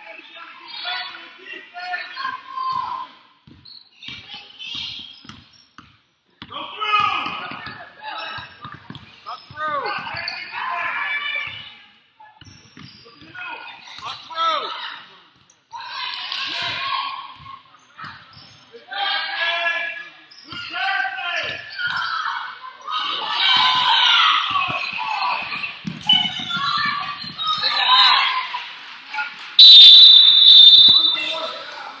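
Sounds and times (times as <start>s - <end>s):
people shouting: 29.6s - 31.8s
crowd voices: 29.6s - 32.0s
referee's whistle blast: 29.6s - 32.0s
sneakers squeaking: 29.6s - 32.0s.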